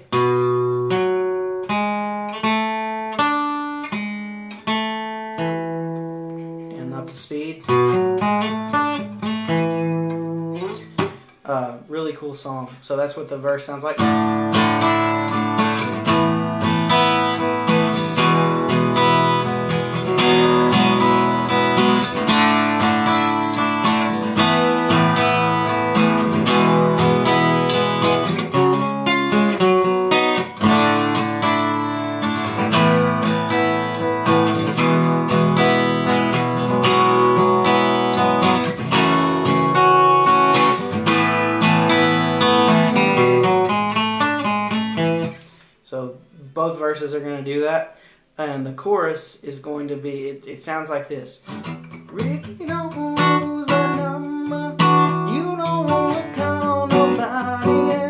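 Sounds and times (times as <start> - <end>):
acoustic guitar playing: 0.0 - 49.0, 50.1 - 58.0.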